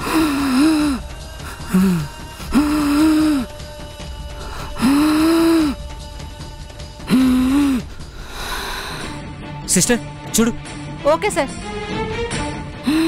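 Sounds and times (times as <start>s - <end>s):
woman gasping for breath: 0.0s - 3.5s, 4.4s - 5.8s, 7.1s - 9.2s, 12.8s - 13.0s.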